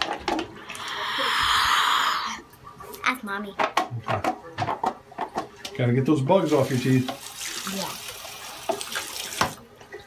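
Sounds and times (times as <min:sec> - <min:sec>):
girl gargling water: 0:00.6 - 0:02.7.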